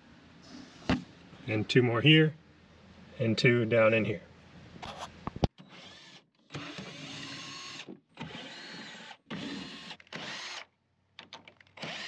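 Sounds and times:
cordless drill running in spurts: 5.7s - 10.7s, 11.8s - 12.0s.

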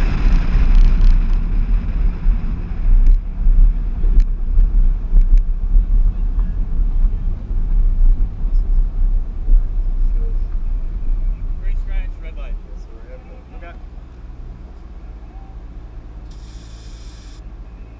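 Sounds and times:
car engine: 0.0s - 17.9s
wind rumble: 0.0s - 17.9s.

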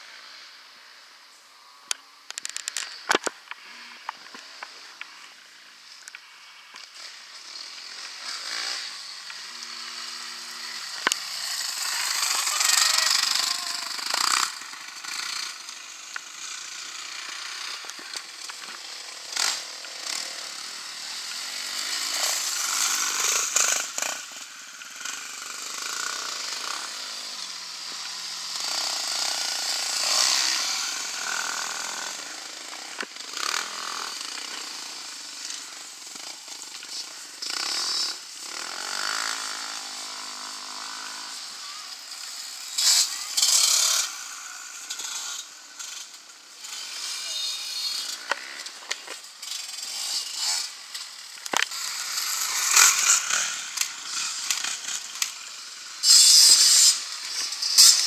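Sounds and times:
dirt bike engines revving past: 0.0s - 58.0s.

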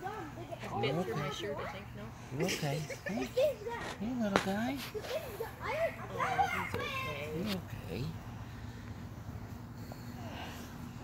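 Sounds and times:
children talking and exclaiming: 0.0s - 11.0s.

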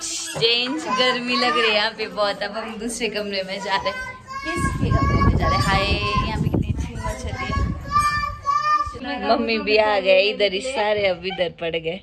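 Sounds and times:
high-pitched voices talking: 2.7s - 9.8s.

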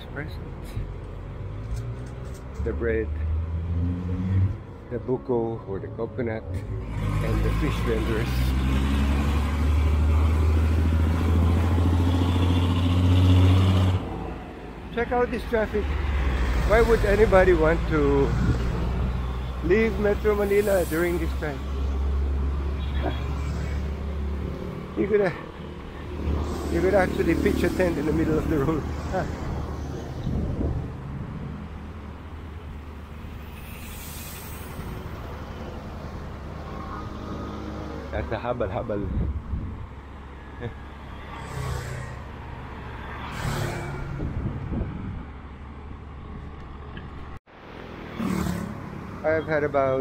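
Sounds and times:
road traffic rumble: 0.0s - 50.0s
motorcycles passing: 6.6s - 45.4s, 47.6s - 50.0s.

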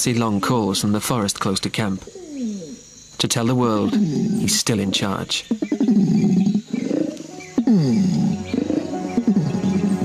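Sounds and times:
orangutan long call: 3.8s - 4.6s, 5.4s - 10.0s
background music: 6.6s - 10.0s.

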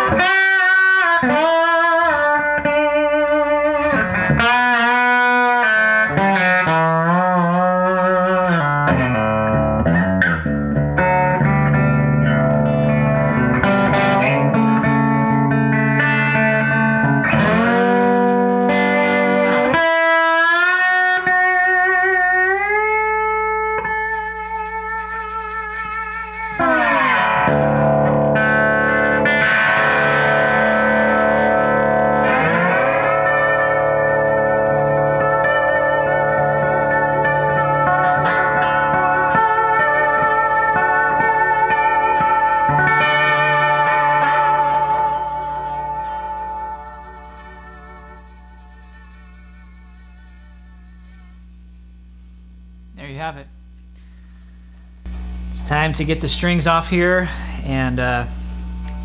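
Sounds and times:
slide electric guitar: 0.0s - 59.0s.

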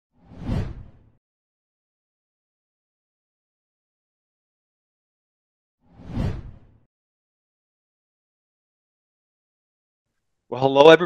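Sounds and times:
deep whoosh: 5.9s - 6.8s.

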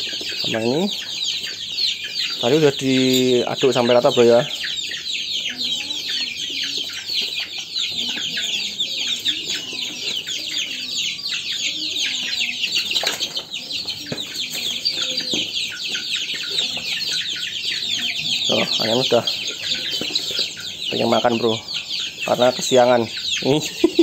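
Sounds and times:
chicks peeping: 0.0s - 24.0s.

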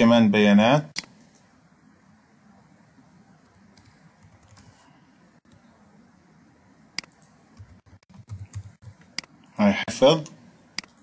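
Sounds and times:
keyboard typing: 3.4s - 5.7s, 7.0s - 9.4s.

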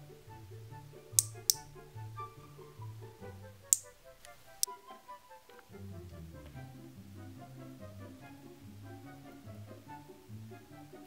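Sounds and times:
background music with bass line: 0.0s - 11.0s
plastic toy pieces clicking: 1.2s - 1.6s, 3.7s - 4.0s.

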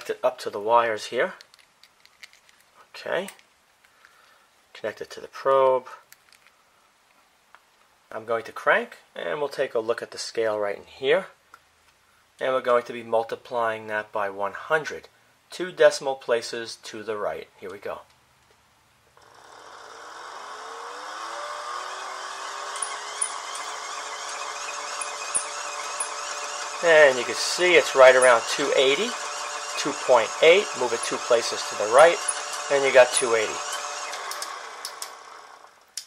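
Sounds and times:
hand-cranked generator whirring: 19.2s - 35.8s.

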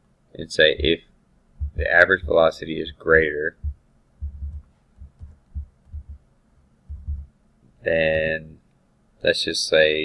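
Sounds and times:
keyboard typing thumps: 1.6s - 2.4s, 3.6s - 6.2s, 6.9s - 7.3s.

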